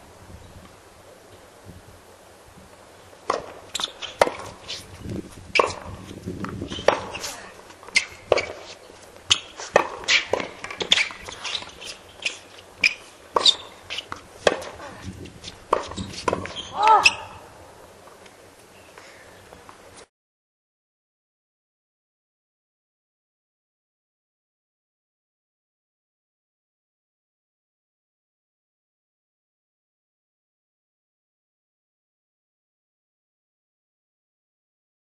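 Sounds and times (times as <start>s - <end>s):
tennis balls struck by rackets: 3.2s - 17.3s.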